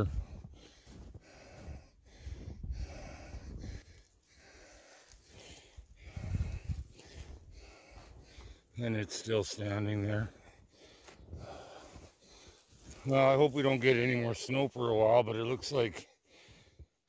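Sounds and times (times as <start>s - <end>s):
man breathing hard: 0.0s - 8.8s, 10.2s - 13.0s, 16.2s - 17.0s.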